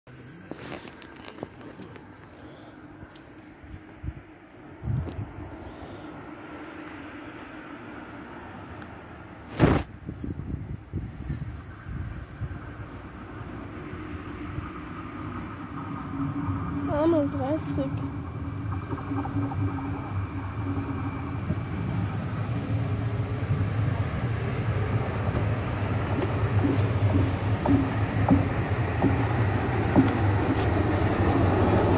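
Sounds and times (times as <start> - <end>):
diesel railcar engine drone: 0.1 - 31.9.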